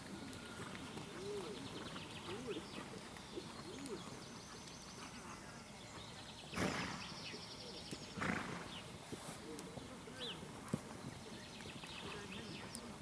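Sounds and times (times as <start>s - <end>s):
horse snorting: 6.6s - 7.1s, 8.2s - 8.7s.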